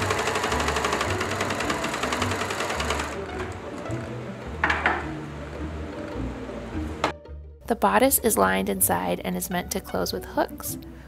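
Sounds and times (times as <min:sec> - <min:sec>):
sewing machine stitching: 0:00.0 - 0:04.1.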